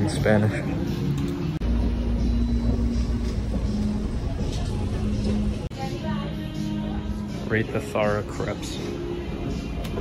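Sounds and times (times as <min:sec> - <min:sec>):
escalator machinery rumble: 0:01.6 - 0:05.7.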